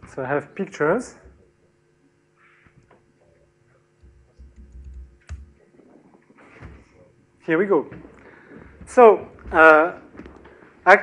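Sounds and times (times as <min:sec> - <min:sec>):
laptop keyboard taps and clicks: 0:04.0 - 0:05.5.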